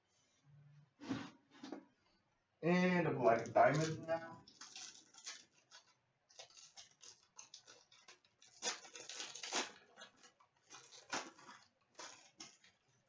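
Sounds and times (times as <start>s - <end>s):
wrapper crinkling and tearing: 3.3s - 13.0s.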